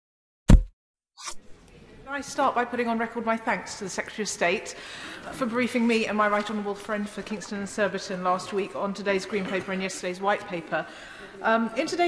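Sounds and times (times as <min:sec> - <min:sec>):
sharp low thump: 0:00.5 - 0:00.7.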